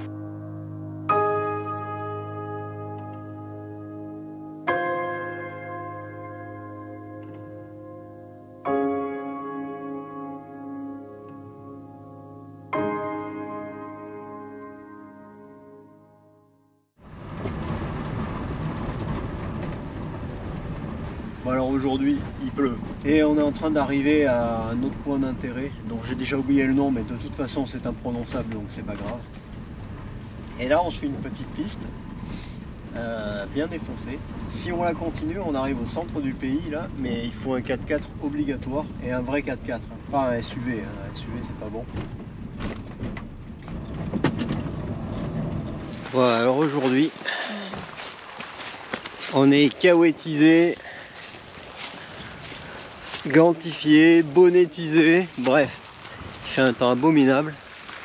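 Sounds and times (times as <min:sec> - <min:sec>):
tyres rumbling on wet gravel: 0:17.0 - 0:58.0.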